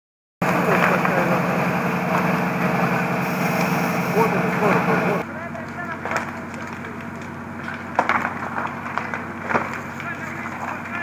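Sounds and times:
fire engine running: 0:00.4 - 0:11.0.

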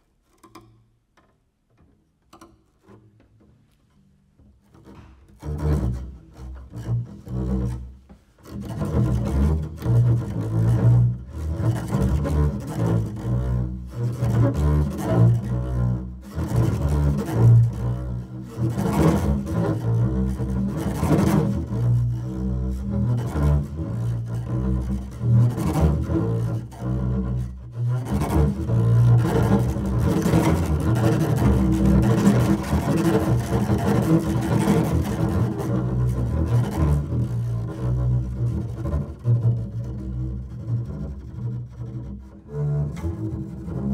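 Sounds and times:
double bass played with bow: 0:00.0 - 0:43.9.

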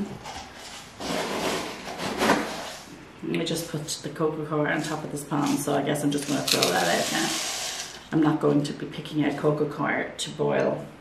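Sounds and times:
rustling and scraping: 0:00.0 - 0:02.9, 0:04.7 - 0:08.1.

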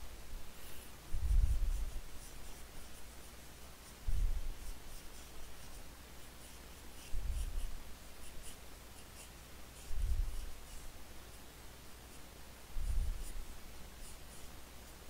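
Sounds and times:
pencil scratching on paper: 0:00.6 - 0:15.0.

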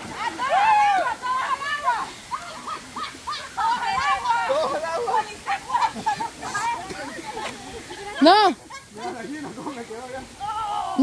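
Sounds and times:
people calling out: 0:00.0 - 0:09.4, 0:10.2 - 0:11.0
people talking excitedly: 0:00.0 - 0:11.0
people laughing: 0:02.3 - 0:10.2.

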